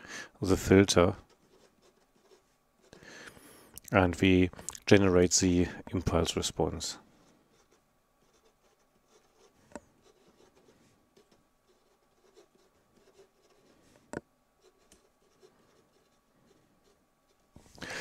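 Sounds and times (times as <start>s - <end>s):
pen scratching on paper: 1.2s - 3.0s, 7.5s - 13.9s, 14.6s - 17.4s.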